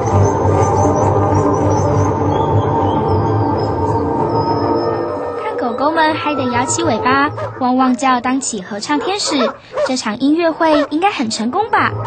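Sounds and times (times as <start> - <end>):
saxophone low sustained notes: 0.0 - 8.0
steady low drone: 0.0 - 8.5.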